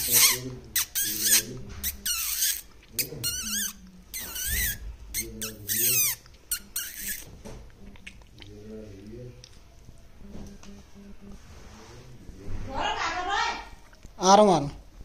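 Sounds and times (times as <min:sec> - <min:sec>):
parakeet squeaking and calling: 0:00.0 - 0:07.3.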